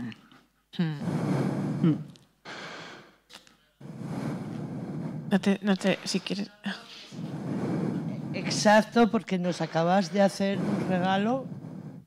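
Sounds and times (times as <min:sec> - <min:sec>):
person breathing heavily: 0:00.8 - 0:03.2, 0:03.8 - 0:12.0.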